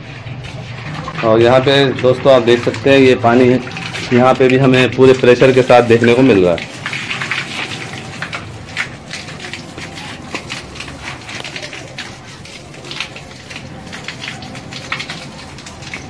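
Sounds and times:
hose water splashing on concrete: 0:00.0 - 0:16.0.

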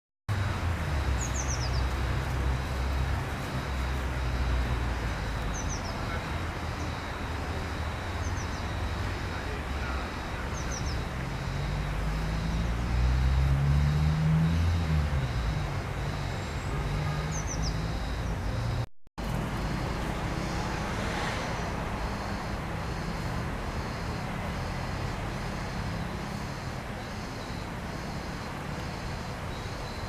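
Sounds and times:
vehicle engine passing: 0:00.3 - 0:29.3
low traffic rumble: 0:00.3 - 0:30.0.

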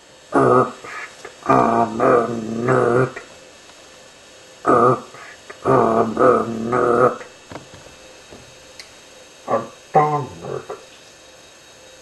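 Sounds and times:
dog-like growling voice: 0:00.3 - 0:03.3, 0:04.7 - 0:07.3, 0:09.5 - 0:10.8.

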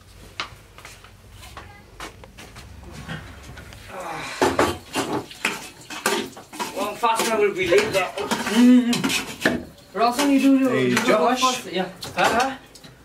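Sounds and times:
dishes and utensils clattering: 0:02.8 - 0:13.0.

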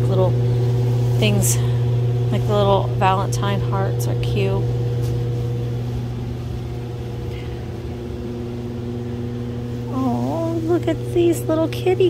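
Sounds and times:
higher constant tones: 0:00.0 - 0:12.0
steady low hum: 0:00.0 - 0:12.0.

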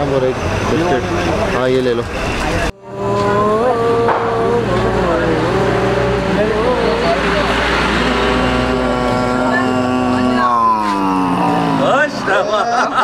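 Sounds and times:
man singing wordless notes: 0:02.7 - 0:12.0.

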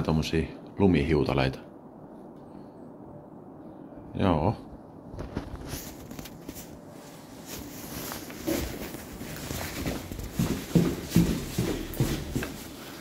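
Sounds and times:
footsteps on concrete stairs: 0:07.6 - 0:13.0.

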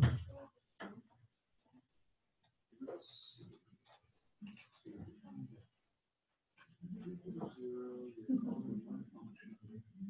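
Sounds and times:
faint indistinct voices: 0:06.6 - 0:10.0.

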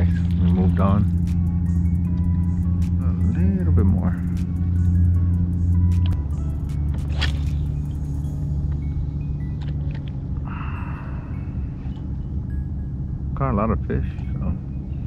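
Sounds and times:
low sustained bass notes: 0:00.0 - 0:15.0.

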